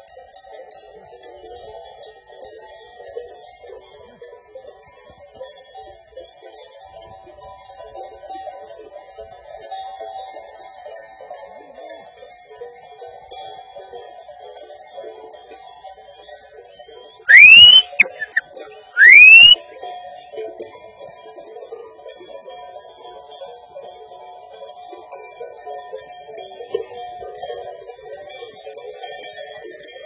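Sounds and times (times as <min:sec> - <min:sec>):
sheep bells tinkling: 0:00.0 - 0:18.9, 0:19.6 - 0:30.0
loud rising whistles: 0:17.3 - 0:18.4, 0:19.0 - 0:19.6.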